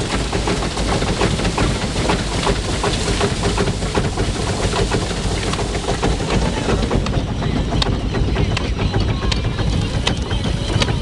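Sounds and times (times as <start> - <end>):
fast mechanical clattering: 0.0 - 11.0
threshing machine drone: 0.0 - 11.0.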